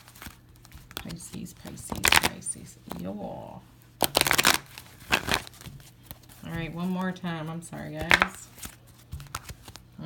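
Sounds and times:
cards being riffle-shuffled: 0.0 - 3.1, 4.0 - 10.0.

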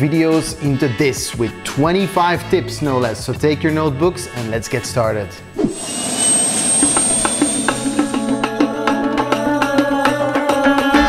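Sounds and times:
jet-like whoosh with high whine: 5.6 - 9.0.

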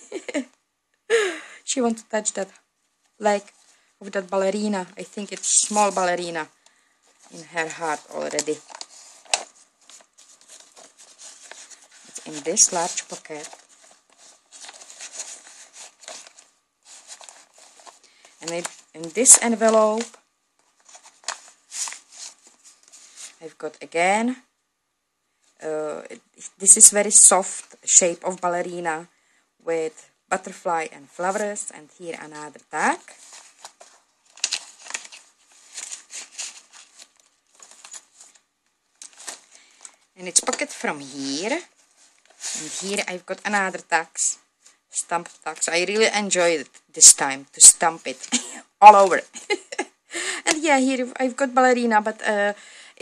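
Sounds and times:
paper and card rustling: 3.4 - 23.6, 31.2 - 49.7.

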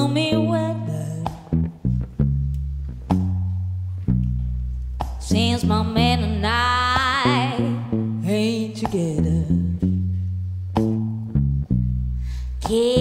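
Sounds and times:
woman singing: 0.0 - 1.5, 5.2 - 9.8, 12.6 - 13.0
electric bass guitar: 0.0 - 13.0.

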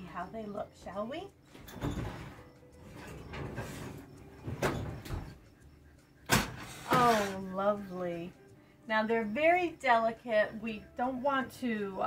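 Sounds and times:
oven door opening: 1.5 - 5.4
baking pan scraping over rack: 1.6 - 5.2, 6.4 - 7.5.

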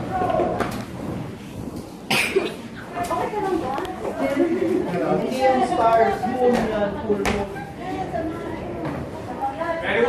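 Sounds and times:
people talking in a room: 0.0 - 10.0.

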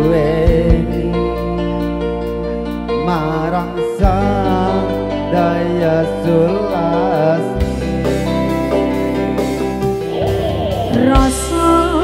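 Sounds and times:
keyboard chords: 0.0 - 12.0
steady bass: 0.0 - 12.0
person singing with vibrato: 3.0 - 12.0.

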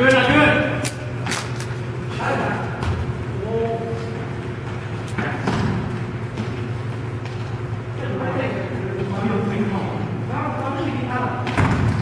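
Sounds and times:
steady low hum: 0.0 - 12.0
footsteps running on gym floor: 2.6 - 8.0.

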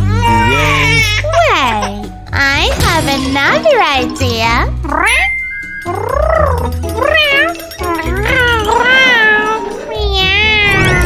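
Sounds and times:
background music with low beat: 0.0 - 10.5
cat meowing: 5.0 - 11.0.

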